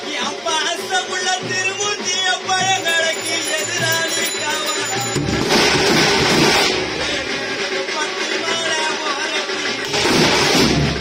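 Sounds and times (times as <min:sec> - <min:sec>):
heavy noisy drumming: 0:00.0 - 0:11.0
bass drum beats: 0:00.3 - 0:11.0
wavering melody line: 0:02.5 - 0:05.7.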